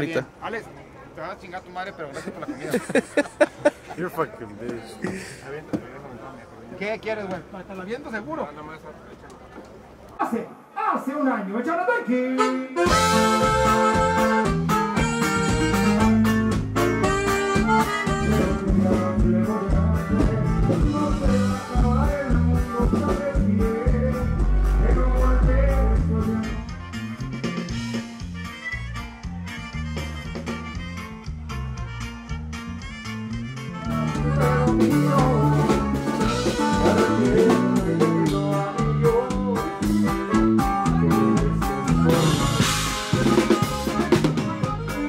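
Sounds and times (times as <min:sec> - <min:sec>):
saxophone: 0:12.2 - 0:19.1, 0:26.3 - 0:38.0, 0:40.0 - 0:45.0
bajo sexto strumming: 0:12.4 - 0:45.0
live band dance music: 0:12.4 - 0:45.0
drum kit beats: 0:12.8 - 0:45.0
electric bass line: 0:12.8 - 0:45.0.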